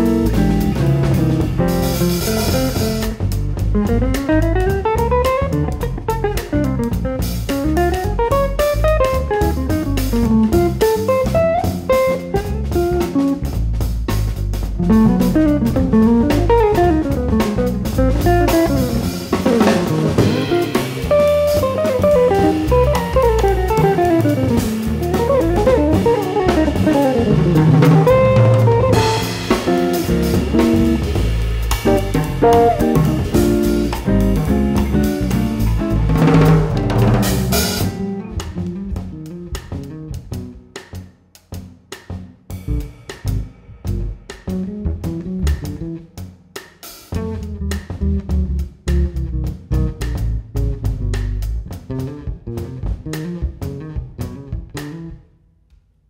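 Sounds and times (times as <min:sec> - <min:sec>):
drum kit cymbals: 0:00.0 - 0:55.1
electric bass: 0:00.0 - 0:55.4.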